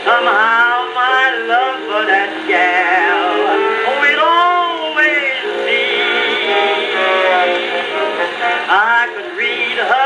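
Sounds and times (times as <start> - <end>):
old jazz record on phonograph: 0.0 - 10.0.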